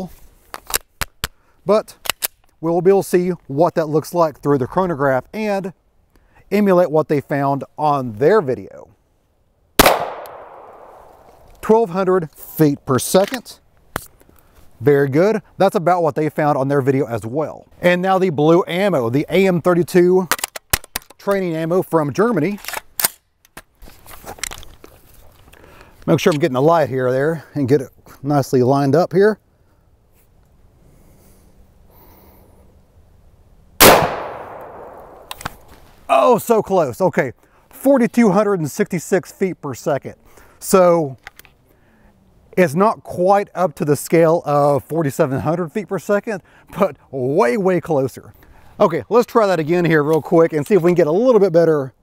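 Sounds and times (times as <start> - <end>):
handgun shot with echo: 9.8 - 11.3, 33.8 - 35.4.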